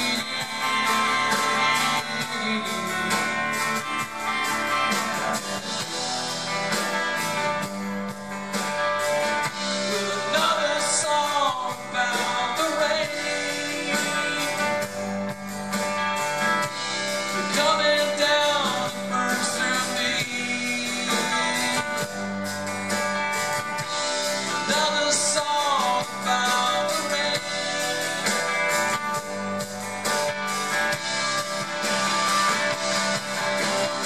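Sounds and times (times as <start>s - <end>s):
live rock band playing: 0.0s - 34.0s.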